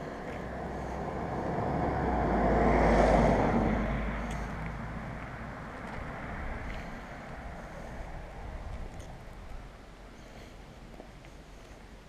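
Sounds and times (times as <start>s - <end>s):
road vehicle passing by: 0.0s - 10.5s.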